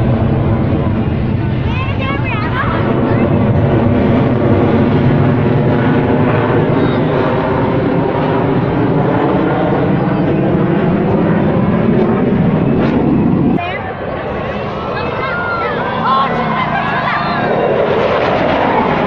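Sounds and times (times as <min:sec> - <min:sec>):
jet engines droning: 0:00.0 - 0:19.0.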